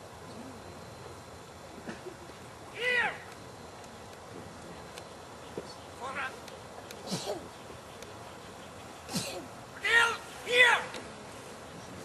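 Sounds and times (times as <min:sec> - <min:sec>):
person shouting dog command: 0:02.8 - 0:03.3, 0:09.8 - 0:10.9.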